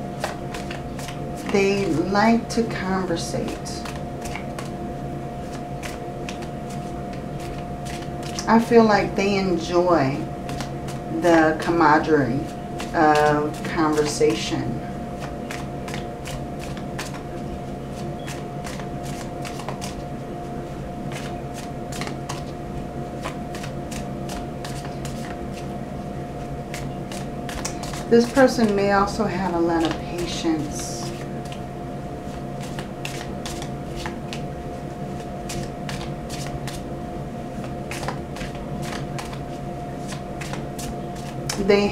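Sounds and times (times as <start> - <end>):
low hum: 0.0 - 41.9
cards being shuffled: 0.1 - 2.2, 3.2 - 4.8, 5.4 - 8.5, 10.4 - 14.4, 15.2 - 20.1, 21.1 - 22.6, 23.2 - 25.7, 26.7 - 29.2, 29.8 - 31.6, 32.2 - 36.9, 37.6 - 41.7.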